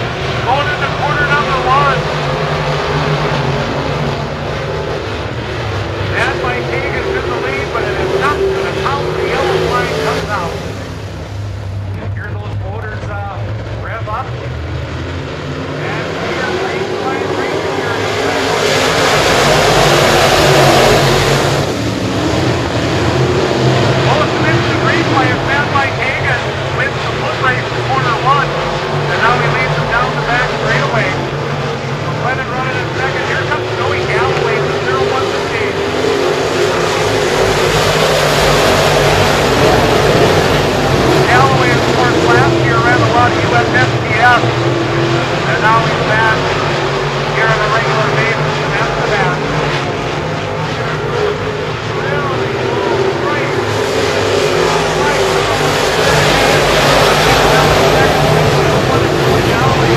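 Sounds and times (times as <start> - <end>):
race car engines at full throttle: 0.0 - 59.9.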